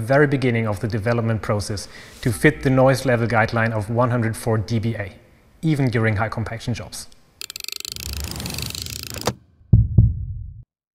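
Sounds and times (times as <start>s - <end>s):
short deep hits: 9.7s - 10.6s.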